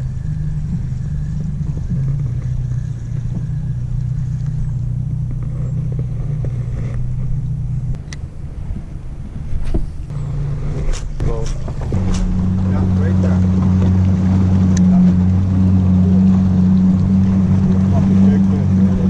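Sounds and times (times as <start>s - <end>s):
boat motor droning: 0.0s - 19.0s.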